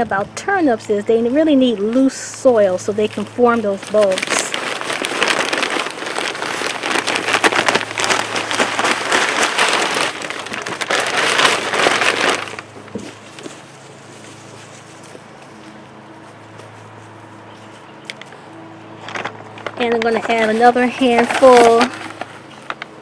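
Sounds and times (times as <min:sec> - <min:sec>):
soil pouring from a bag: 0:03.7 - 0:14.1.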